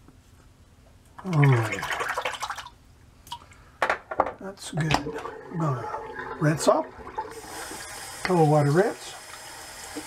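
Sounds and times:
water splashing at a sink: 1.2s - 3.4s, 4.7s - 10.0s.

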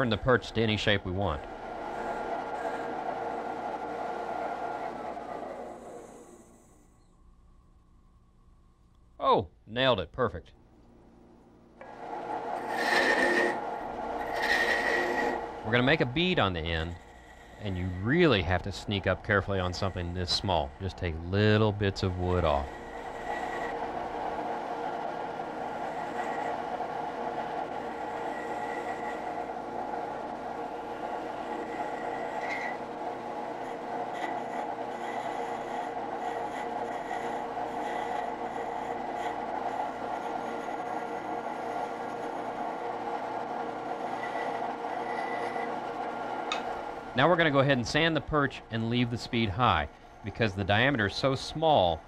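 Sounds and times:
wood lathe motor hum: 0.0s - 6.9s, 11.8s - 52.0s
gouge scraping wood: 12.5s - 15.9s, 16.6s - 20.6s, 21.6s - 24.1s, 31.4s - 32.8s, 33.4s - 42.4s, 44.1s - 45.7s.

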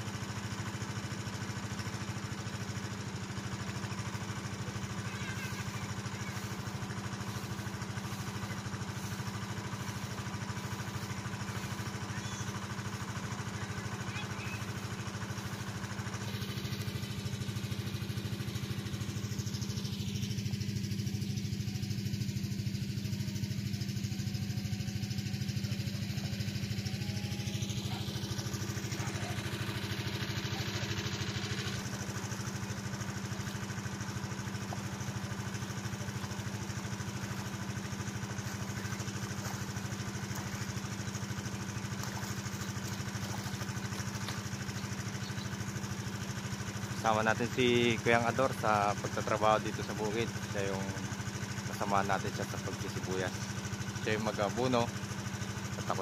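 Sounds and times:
water pump engine droning: 0.0s - 56.0s.

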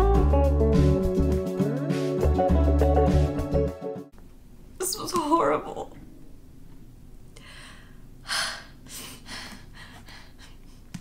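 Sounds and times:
woman breathing softly: 7.4s - 11.0s
woman gasping: 7.4s - 11.0s.

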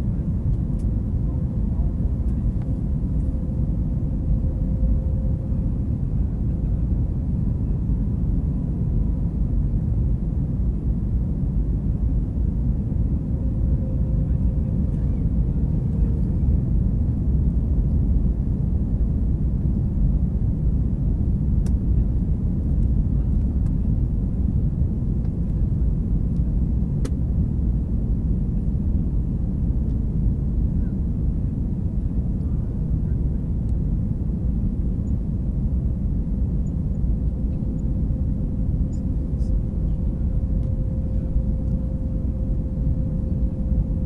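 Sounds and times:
faint steady hum: 0.0s - 44.0s
jet engine and airflow rumble: 0.0s - 44.0s
faint light ticks: 0.5s - 0.9s, 26.4s - 27.2s.

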